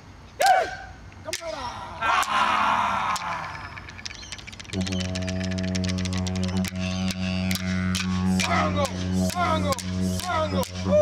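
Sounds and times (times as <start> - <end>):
clapsticks clicking: 3.1 - 8.1, 8.8 - 10.8
didgeridoo low drone: 4.6 - 11.0.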